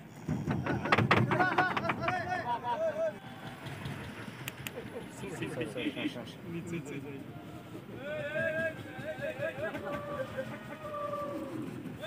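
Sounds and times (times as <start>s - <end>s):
outdoor background murmur: 0.0s - 12.0s
people shouting high-pitched calls: 8.0s - 12.0s.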